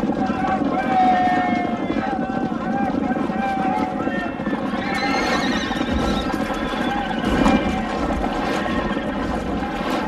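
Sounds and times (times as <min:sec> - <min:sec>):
busy background of movement: 0:00.0 - 0:10.0
horse whinnying: 0:04.5 - 0:10.0.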